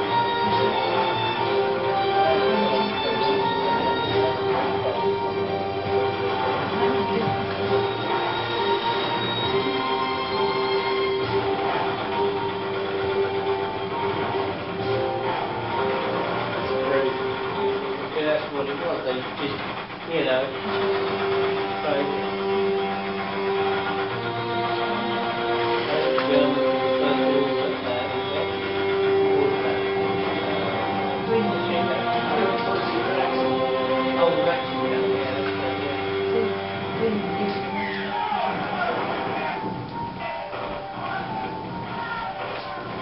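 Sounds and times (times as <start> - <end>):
noisy rumbling bed: 0.0 - 43.0
steady hum: 0.0 - 43.0.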